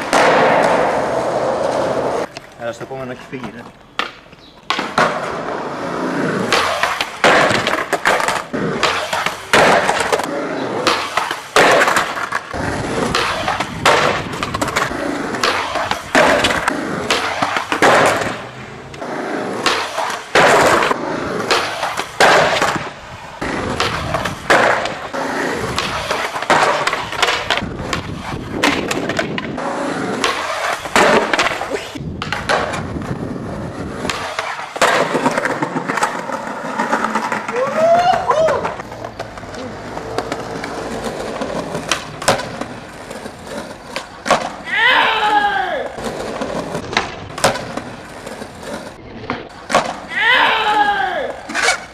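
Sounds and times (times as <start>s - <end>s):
skateboard wheels rolling on stone: 0.0s - 51.9s
skateboard clacking on stone: 3.4s - 5.3s, 6.4s - 25.1s, 30.2s - 32.9s, 34.0s - 44.7s, 45.3s - 51.9s.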